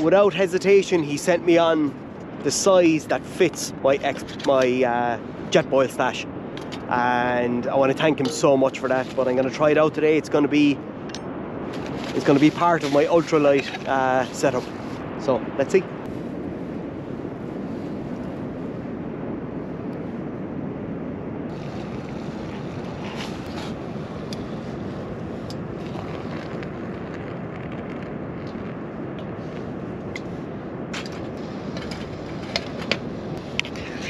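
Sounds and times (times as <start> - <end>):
wind on microphone: 0.0 - 34.0.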